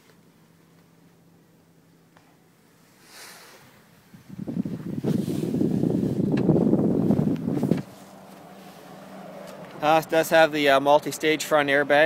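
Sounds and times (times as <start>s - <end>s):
phone microphone handling rubbing: 4.6s - 8.6s.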